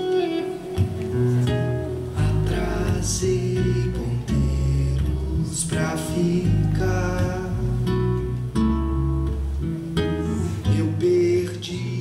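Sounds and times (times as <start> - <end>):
acoustic guitar strumming chords: 0.0 - 12.0
electric bass guitar: 0.0 - 12.0.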